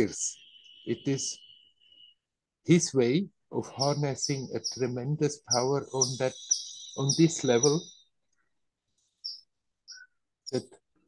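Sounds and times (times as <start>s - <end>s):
bird chirps: 0.0s - 10.7s.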